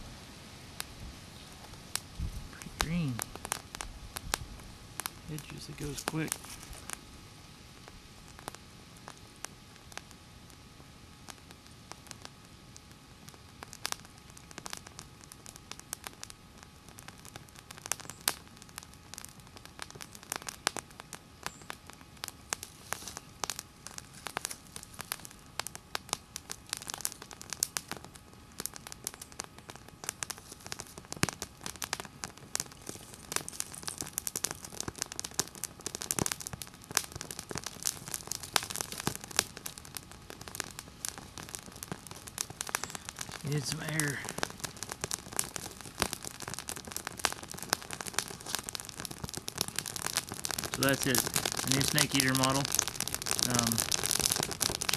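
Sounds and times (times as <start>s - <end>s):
dry grass fire crackling: 0.0s - 54.9s
dry stalks rustling: 4.5s - 7.2s, 22.5s - 25.4s, 30.0s - 35.6s, 36.8s - 46.3s.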